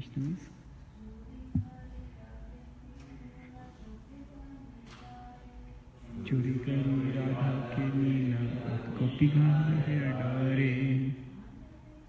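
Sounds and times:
voices chanting together: 6.0s - 11.6s.

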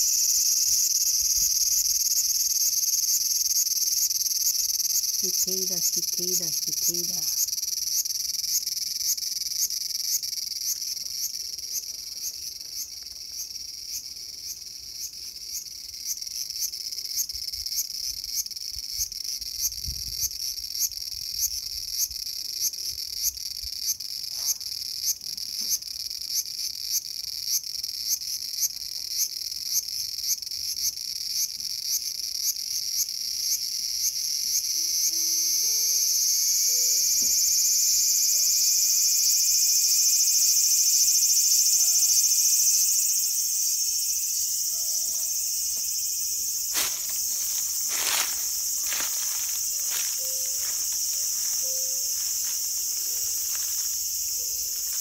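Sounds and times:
cicada buzzing: 0.0s - 55.0s.

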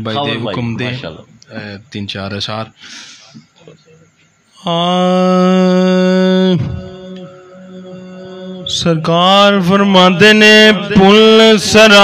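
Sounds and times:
faint steady drone: 0.0s - 12.0s
man singing long note: 4.6s - 12.0s.

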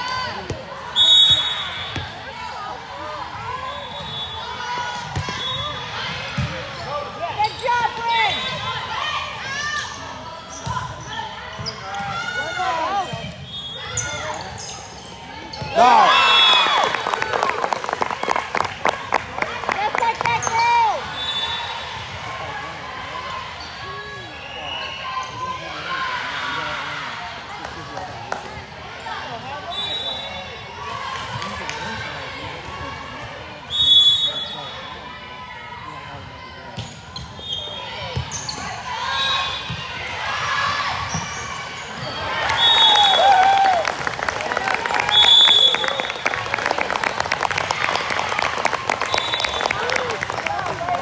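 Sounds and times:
players calling and shouting: 0.0s - 17.2s.

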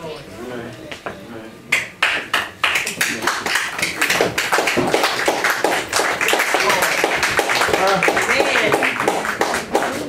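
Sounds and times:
hands clapping: 1.7s - 10.0s.

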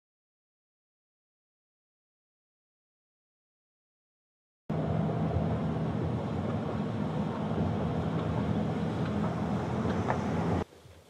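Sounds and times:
car road noise and engine hum: 4.7s - 10.7s.

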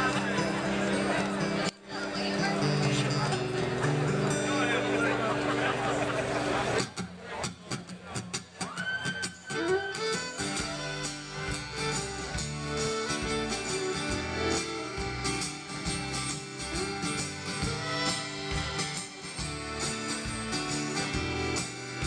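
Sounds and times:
acoustic guitar strums: 0.0s - 22.0s
country-rock band playing: 0.0s - 22.0s.

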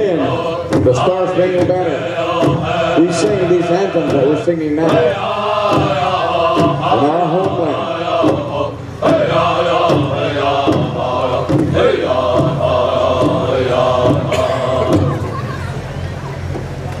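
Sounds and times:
men chanting together: 0.0s - 15.5s
large drum strokes: 0.0s - 17.0s.

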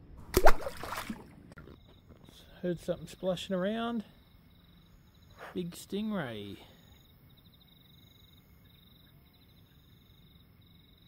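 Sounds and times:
splash in water: 0.2s - 1.4s.

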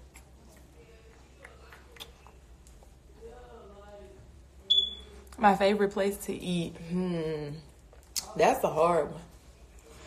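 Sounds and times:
high-pitched electronic beep: 4.7s - 5.1s.

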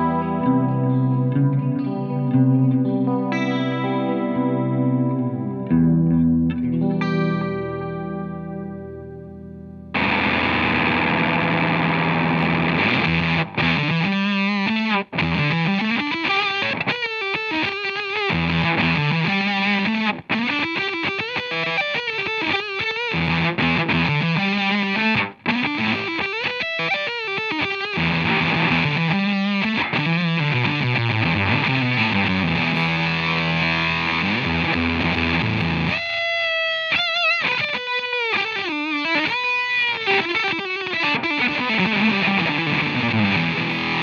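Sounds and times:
distorted electric guitar riff: 0.0s - 44.0s.

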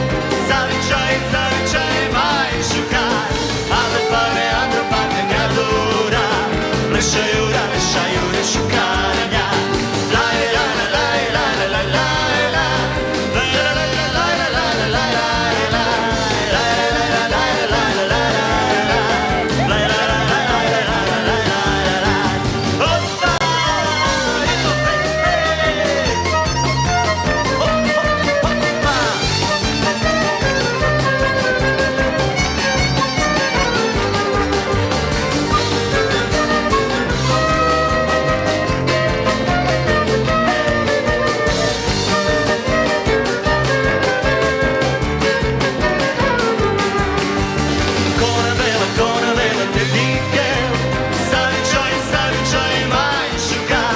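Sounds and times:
violin melody: 0.0s - 7.1s, 10.1s - 53.9s
acoustic guitar: 0.0s - 53.9s
bass line: 0.0s - 53.9s.

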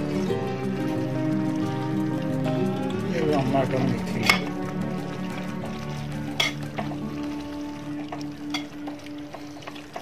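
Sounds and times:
spoon stirring thick curry: 0.0s - 10.0s
spoon knocking and scraping pot: 4.2s - 4.6s, 6.2s - 7.2s.

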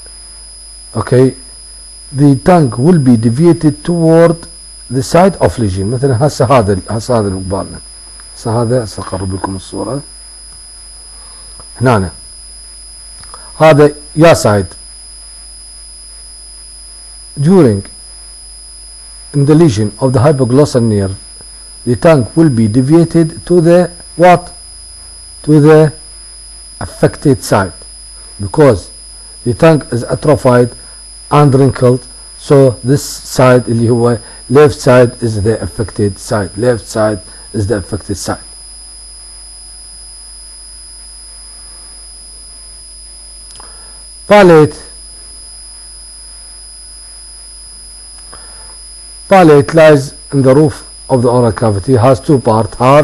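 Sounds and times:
faint hiss: 0.0s - 16.3s, 19.0s - 38.6s, 40.4s - 42.8s, 43.4s - 53.0s
electrical hum: 0.0s - 53.0s
high-pitched whine: 0.0s - 53.0s.

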